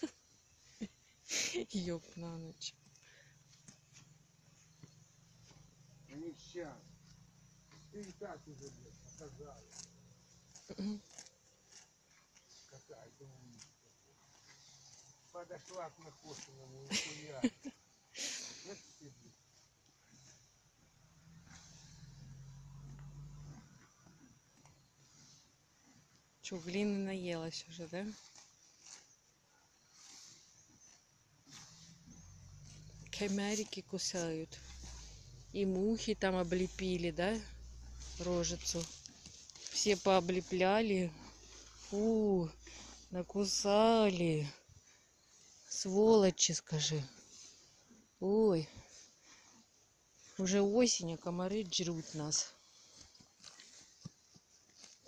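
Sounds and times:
horse cropping grass: 22.8s - 44.0s, 51.5s - 55.0s.

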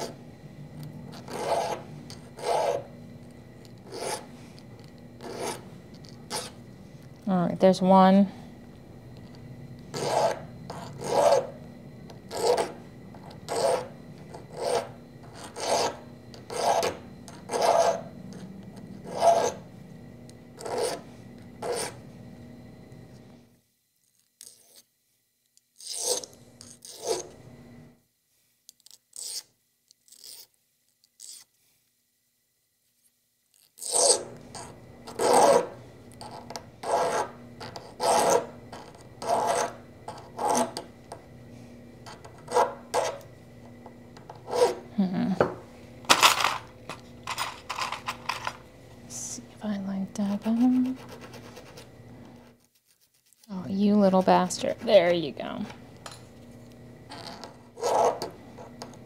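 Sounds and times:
hand file rasping on metal: 2.4s - 2.9s, 10.0s - 11.5s, 19.0s - 19.6s, 36.8s - 38.6s, 39.2s - 39.8s, 44.5s - 44.8s.

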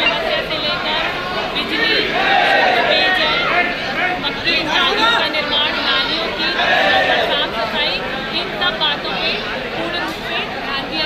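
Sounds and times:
chatter of voices: 0.0s - 11.0s
woman talking: 0.0s - 11.0s.

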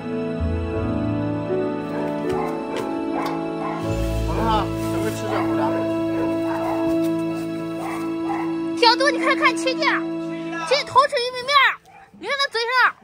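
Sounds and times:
background music with sustained notes: 0.0s - 13.0s.

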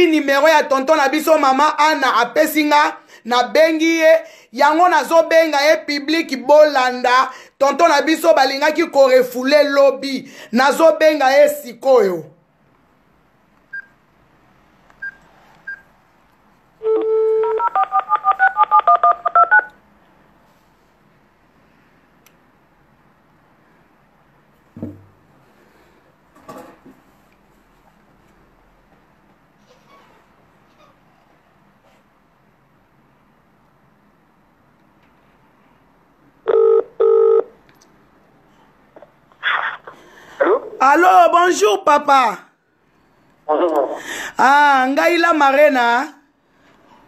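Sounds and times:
dial tone: 16.8s - 19.7s, 36.5s - 37.5s
touch-tone dialing tones: 16.8s - 19.7s.

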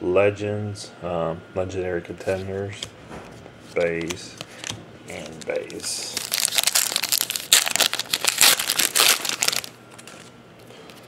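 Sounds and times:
foil wrapper crinkling and tearing: 4.6s - 10.3s.

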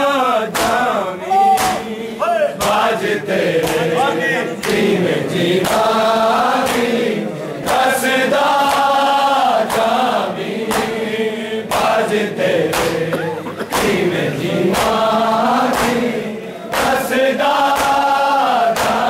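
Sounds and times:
men chanting together: 0.0s - 19.0s
hands slapping bare chests: 0.5s - 2.0s, 2.6s - 3.0s, 3.6s - 4.0s, 4.6s - 5.0s, 5.6s - 6.0s, 6.6s - 7.0s, 7.6s - 9.0s, 9.6s - 11.1s, 11.7s - 19.0s.

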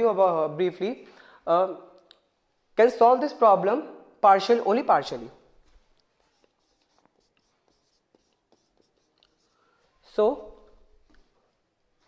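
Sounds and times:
marker writing on a whiteboard: 5.8s - 12.0s.

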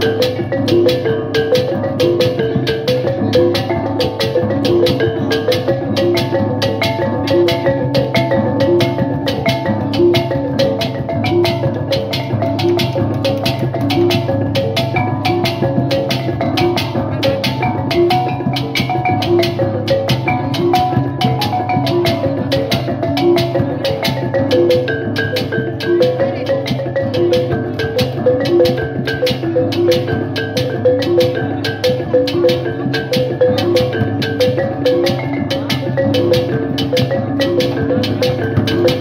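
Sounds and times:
drum beat: 0.0s - 39.0s
small gongs playing melody: 0.0s - 39.0s.

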